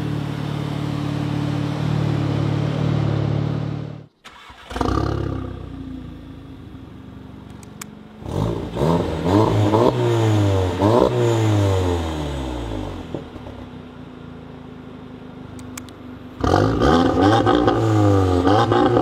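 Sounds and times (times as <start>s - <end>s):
car engine starting and revving: 0.0s - 13.9s, 16.3s - 19.0s.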